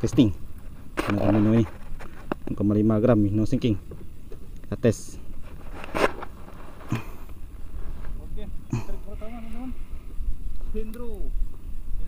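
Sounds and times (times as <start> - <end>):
wind rumble on microphone: 5.2 - 12.0.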